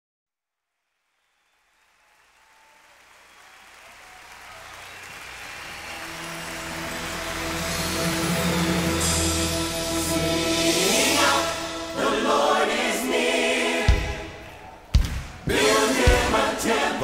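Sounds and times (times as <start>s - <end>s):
audience applause and cheering: 1.2s - 17.0s
band playing sustained chords: 5.5s - 14.5s
choir singing: 6.2s - 17.0s.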